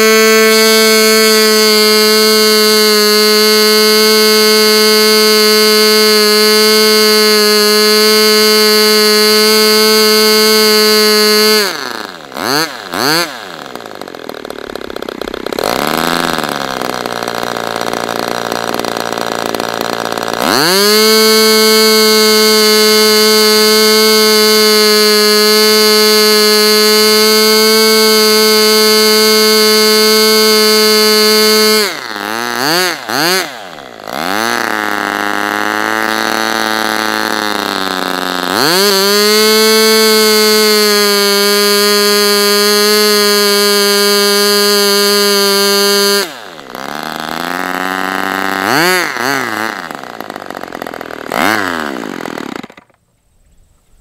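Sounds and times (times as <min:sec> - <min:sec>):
model engine revving: 0:00.0 - 0:53.0.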